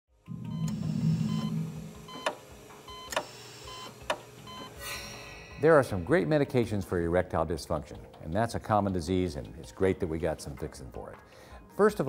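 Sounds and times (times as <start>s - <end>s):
low droning chord: 0.2s - 2.8s, 4.8s - 6.8s
short electronic beeps: 0.3s - 3.9s.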